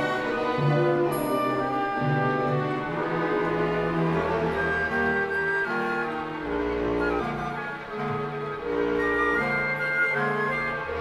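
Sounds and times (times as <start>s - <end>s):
orchestra playing slow chords: 0.0s - 11.0s.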